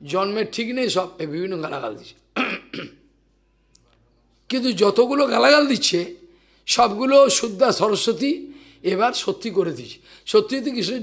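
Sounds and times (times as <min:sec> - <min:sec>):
man clearing his throat: 0:02.4 - 0:03.1.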